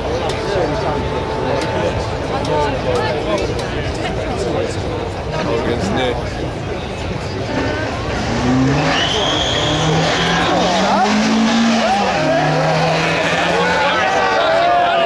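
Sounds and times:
car engines revving and accelerating: 0:00.0 - 0:15.0.

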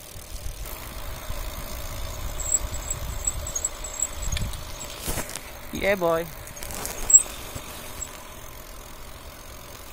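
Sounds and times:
bicycle rolling on asphalt: 0:00.0 - 0:09.9.

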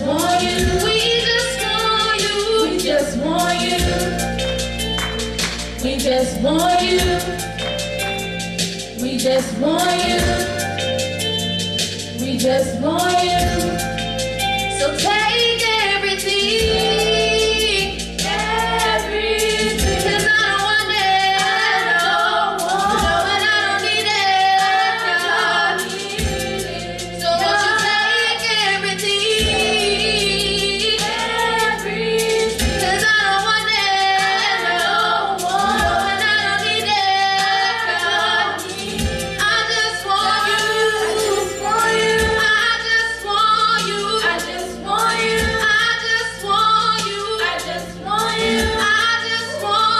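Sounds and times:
women singing gospel in harmony: 0:00.0 - 0:49.9
beat: 0:00.1 - 0:49.1.

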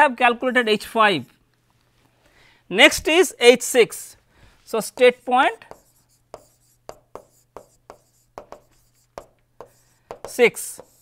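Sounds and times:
faint steady hum: 0:01.3 - 0:11.0
stylus tapping on tablet: 0:05.0 - 0:11.0.

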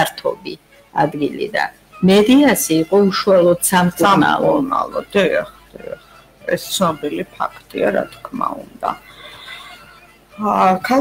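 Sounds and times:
person's voice: 0:00.0 - 0:09.7, 0:10.4 - 0:11.0.

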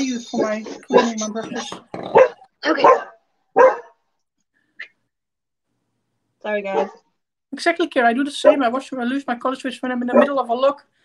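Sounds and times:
dog barking: 0:00.4 - 0:01.2, 0:02.1 - 0:04.0, 0:06.7 - 0:07.1, 0:08.4 - 0:08.7, 0:10.1 - 0:10.4.

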